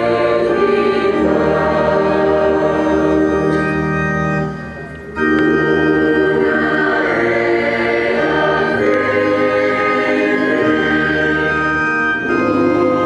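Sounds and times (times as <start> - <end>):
choir singing: 0.0 - 4.2, 5.1 - 13.0
church organ chords: 0.0 - 13.0.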